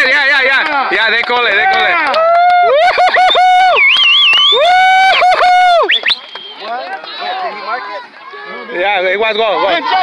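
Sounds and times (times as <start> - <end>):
people shouting and calling: 0.0 - 10.0.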